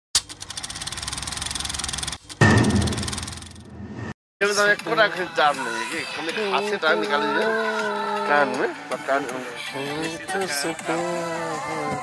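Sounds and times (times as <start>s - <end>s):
sharp hit: 2.4s - 4.2s.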